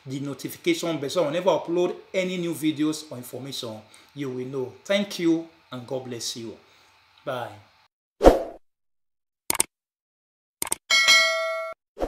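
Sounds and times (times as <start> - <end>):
click sounds: 9.5 - 9.7, 10.6 - 10.8
bell ding: 10.9 - 11.8.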